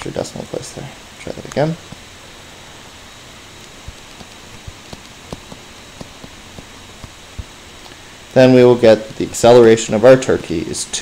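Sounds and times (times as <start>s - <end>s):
background hiss: 0.0s - 11.0s
stylus tapping on tablet screen: 3.6s - 7.5s.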